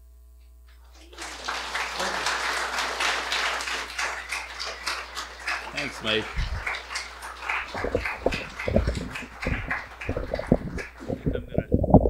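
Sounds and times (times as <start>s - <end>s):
faint room noise: 0.0s - 12.0s
microphone being handled thumps: 7.8s - 12.0s.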